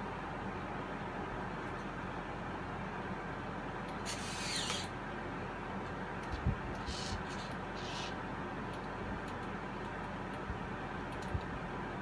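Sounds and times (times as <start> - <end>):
steady hum: 0.0 - 12.0
servo motors whirring: 4.1 - 4.9, 6.8 - 8.2.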